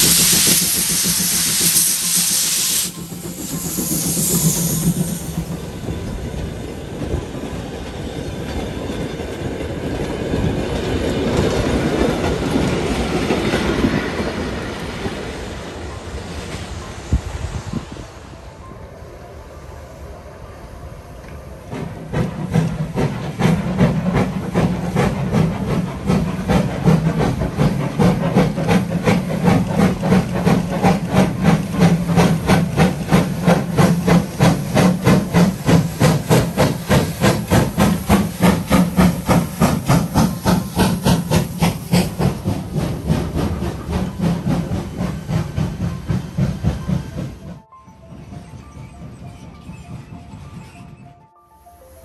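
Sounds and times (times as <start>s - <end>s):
steam hissing: 0.0s - 7.2s, 21.7s - 47.4s
steam locomotive chuffing: 0.0s - 18.0s, 20.9s - 52.0s.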